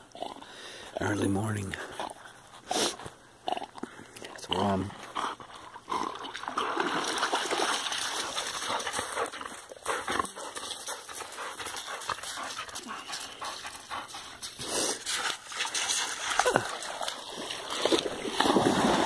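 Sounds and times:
dog splashing in water: 6.0 - 11.3, 14.5 - 19.0
paws crunching on gravel: 8.2 - 18.4.

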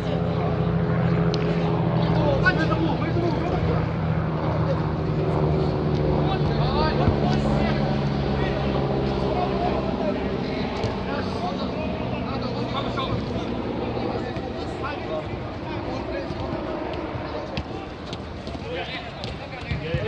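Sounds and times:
low engine-like drone: 0.0 - 18.5.

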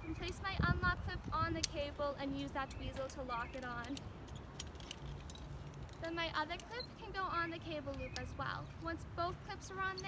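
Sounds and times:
metal carabiners clicking and jingling: 1.6 - 8.4.

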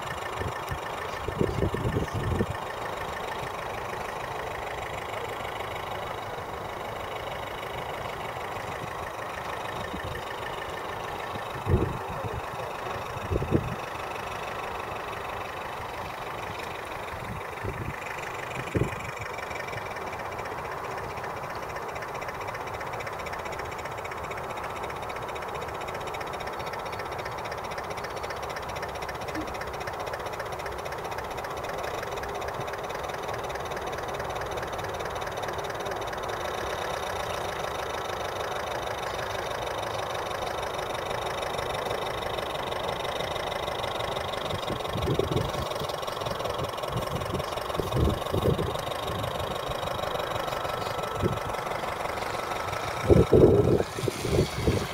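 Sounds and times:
model boat engine drone: 0.0 - 54.9.

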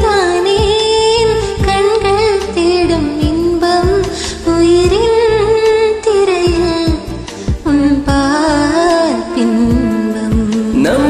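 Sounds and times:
karaoke backing track with drums: 0.0 - 11.0.

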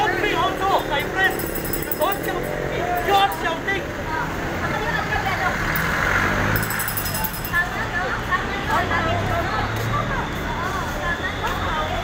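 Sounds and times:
motor vehicle passing: 0.0 - 12.0
street traffic: 0.0 - 12.0.

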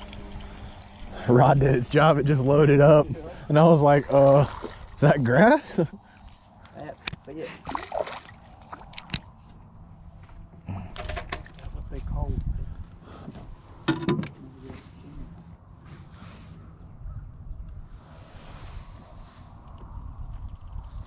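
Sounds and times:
water sloshing against hull: 3.2 - 6.8, 7.6 - 9.7.

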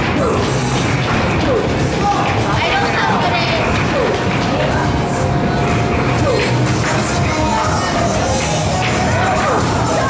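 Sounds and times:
loud music: 0.0 - 10.0.

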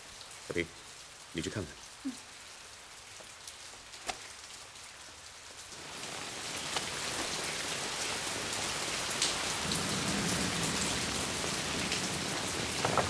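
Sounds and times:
rain falling: 0.0 - 13.0.

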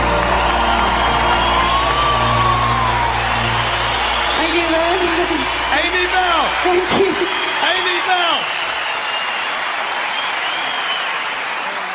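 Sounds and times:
person speaking over music: 4.4 - 8.1.

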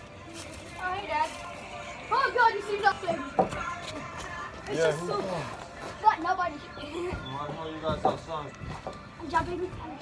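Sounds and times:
background music: 0.0 - 10.0
boys talking: 0.5 - 10.0.

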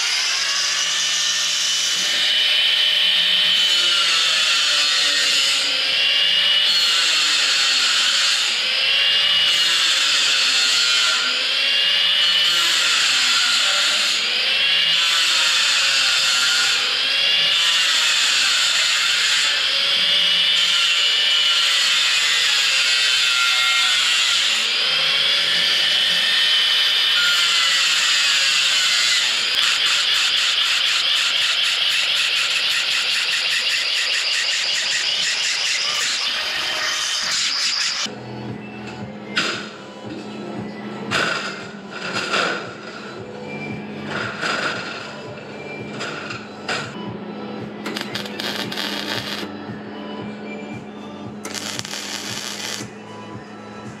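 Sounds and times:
power tool working metal: 0.0 - 38.1, 47.8 - 49.5, 51.4 - 53.0.

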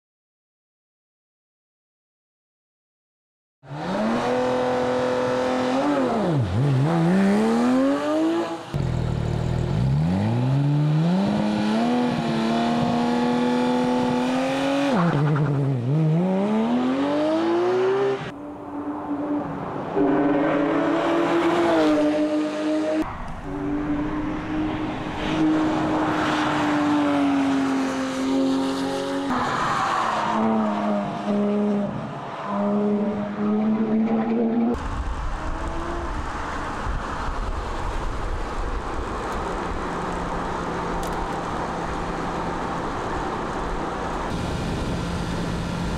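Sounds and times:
car engine revving hard: 3.7 - 8.9.

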